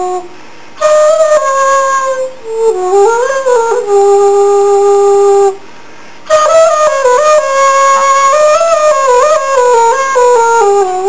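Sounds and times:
bamboo flute steady note: 0.0s - 11.0s.

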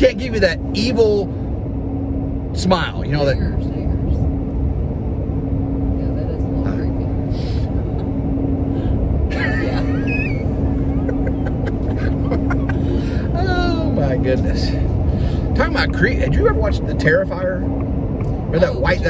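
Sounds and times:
constant low hum: 0.0s - 19.0s
truck road and engine rumble: 0.0s - 19.0s.

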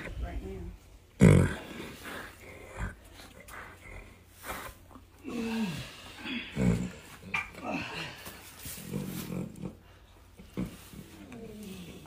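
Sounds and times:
horse groaning: 1.1s - 12.0s.

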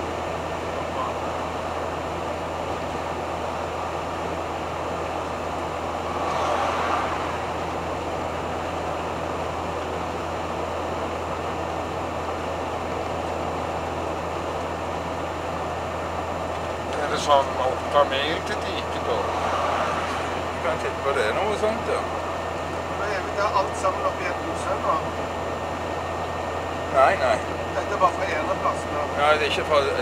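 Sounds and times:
engine drone: 0.0s - 30.0s
road noise inside vehicle: 0.0s - 30.0s.

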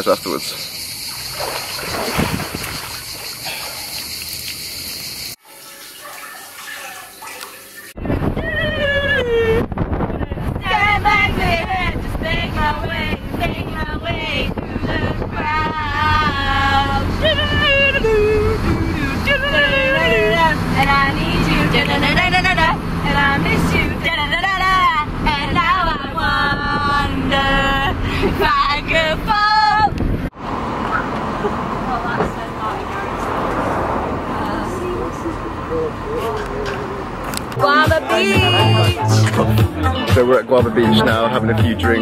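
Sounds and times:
car road and engine noise: 0.0s - 5.4s, 7.9s - 42.0s
pool water splashing: 1.1s - 8.0s
person singing: 37.6s - 42.0s.

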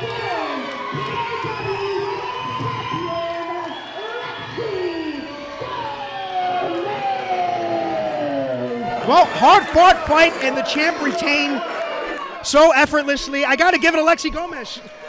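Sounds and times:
crowd shouting and cheering: 0.0s - 15.0s.

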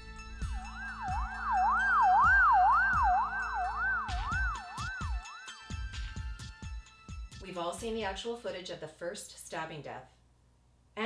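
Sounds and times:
background music: 0.0s - 8.4s
emergency siren wailing: 0.4s - 5.4s.

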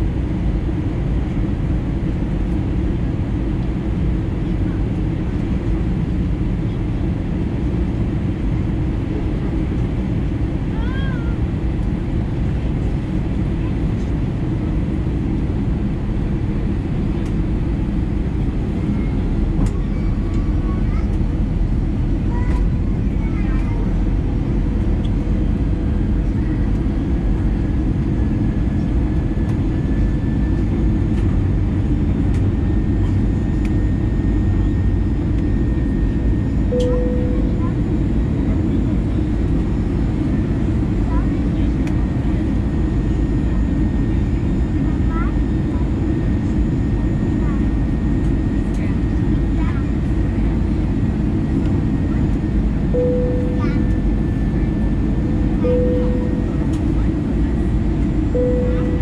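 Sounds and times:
jet cabin airflow and engine noise: 0.0s - 59.0s.

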